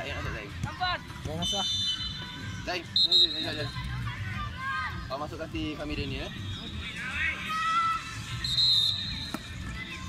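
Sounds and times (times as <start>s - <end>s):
low crowd noise: 0.0s - 10.0s
whistle blast: 1.4s - 3.7s, 8.4s - 9.4s.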